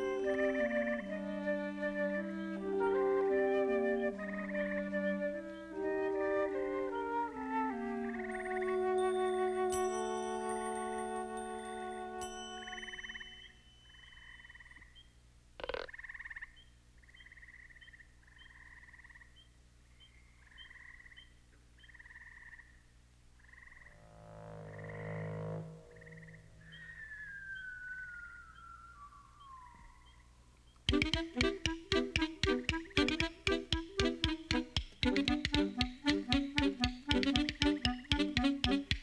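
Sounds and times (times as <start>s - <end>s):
frog-like croaks: 15.6s - 19.4s, 20.4s - 22.8s, 23.4s - 27.1s
low drone: 23.9s - 30.5s
slow falling whistle: 24.7s - 30.4s.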